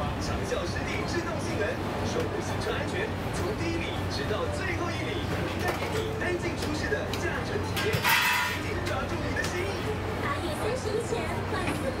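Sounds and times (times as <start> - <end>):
chatter of voices: 0.0 - 12.0
street noise: 0.0 - 12.0.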